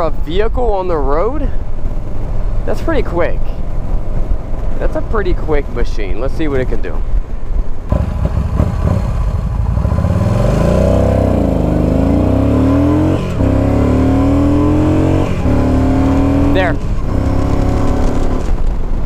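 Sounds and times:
quick gear upshifts: 0:01.5 - 0:19.0
motorcycle engine accelerating hard: 0:07.9 - 0:19.0.

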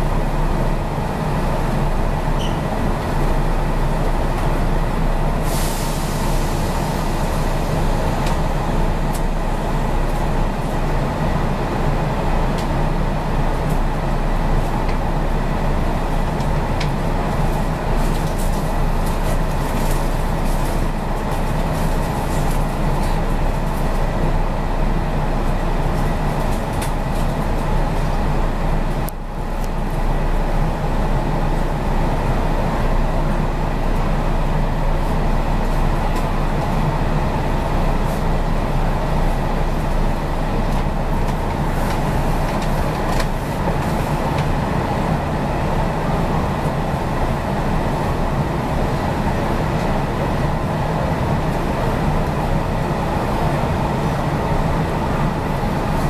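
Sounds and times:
electric train equipment humming: 0:00.0 - 0:56.0.

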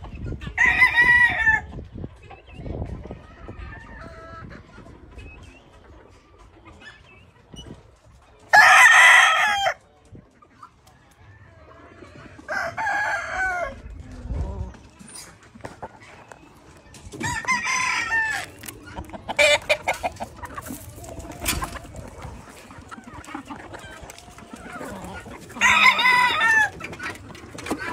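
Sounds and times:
rooster crowing: 0:25.6 - 0:26.7.

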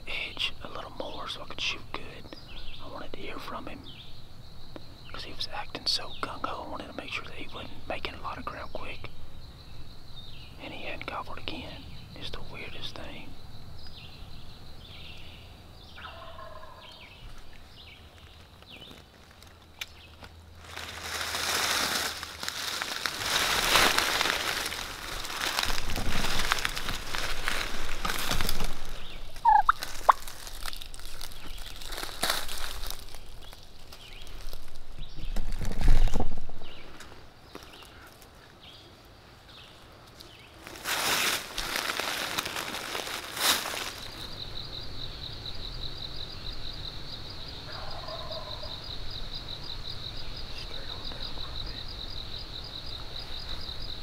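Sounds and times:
turkey gobbling: 0:16.0 - 0:17.0, 0:29.3 - 0:30.3, 0:47.7 - 0:48.7
loud rustling and crunching: 0:18.6 - 0:36.3, 0:40.6 - 0:44.3.

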